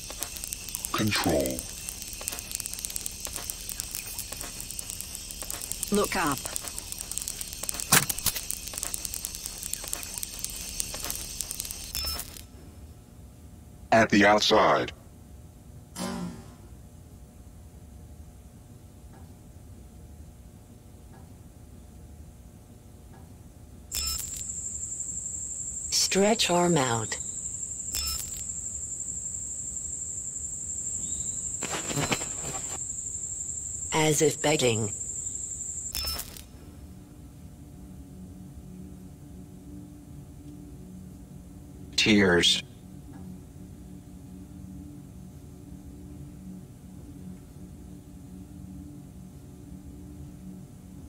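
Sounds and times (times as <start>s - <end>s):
dense electronic crackling: 0.0s - 12.4s
low flickering rumble: 0.0s - 12.4s
faint hum: 0.0s - 51.0s.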